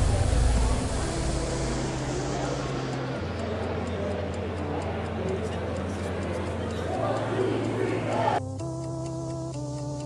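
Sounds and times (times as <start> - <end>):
indistinct crowd voices: 0.0 - 8.4.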